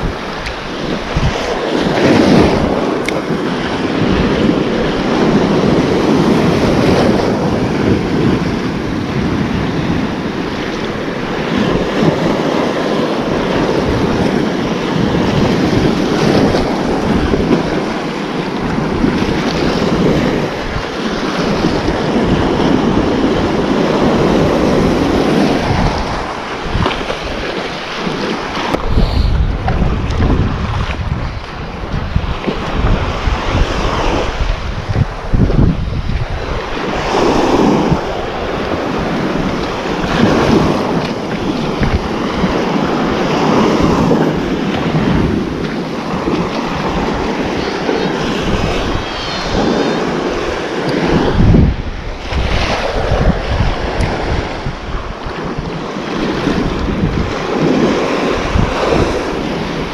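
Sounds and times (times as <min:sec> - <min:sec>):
small waves breaking on shore: 0:00.0 - 0:59.9
wind buffeting microphone: 0:00.0 - 0:59.9.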